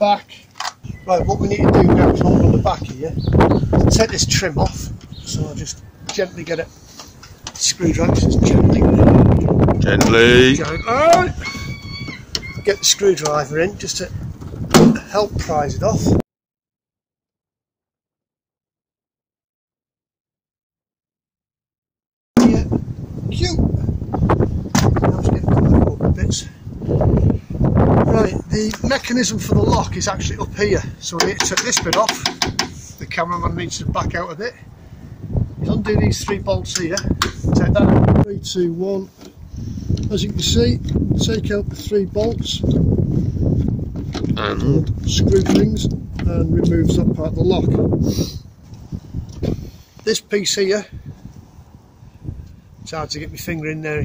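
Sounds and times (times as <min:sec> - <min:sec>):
wind buffeting microphone: 0:00.8 - 0:16.2, 0:22.4 - 0:49.9, 0:50.7 - 0:54.0.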